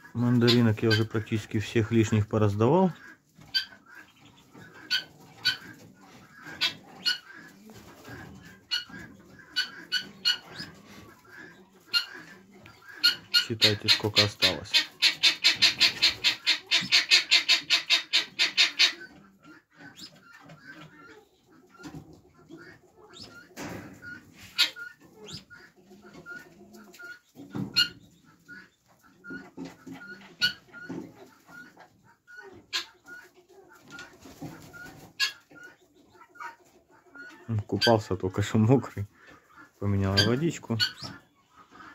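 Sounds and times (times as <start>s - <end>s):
birds calling: 0.0s - 41.9s.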